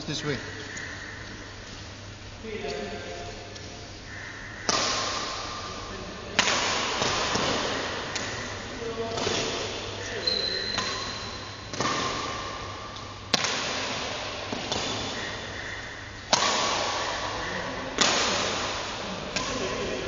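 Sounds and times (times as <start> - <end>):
badminton racket hitting shuttlecock: 6.4 - 12.6, 13.3 - 15.5, 16.3 - 20.0.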